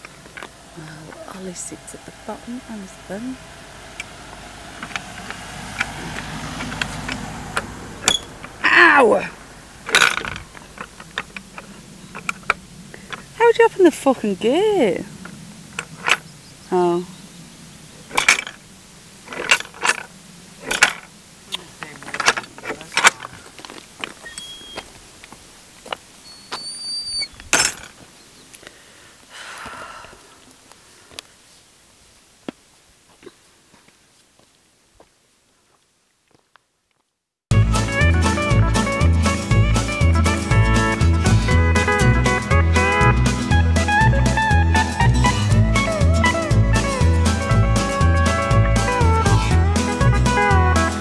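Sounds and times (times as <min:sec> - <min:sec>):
car driving past: 0:00.0 - 0:13.4
footsteps on rough track: 0:20.7 - 0:26.7, 0:32.4 - 0:37.2
thin high-pitched squeaks: 0:24.2 - 0:24.9, 0:26.2 - 0:27.8.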